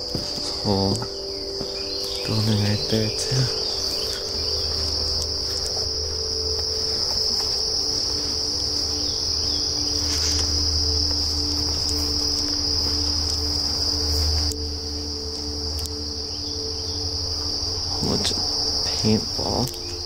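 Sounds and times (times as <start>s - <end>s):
insects chorus: 0.0s - 20.0s
low rumble: 0.0s - 20.0s.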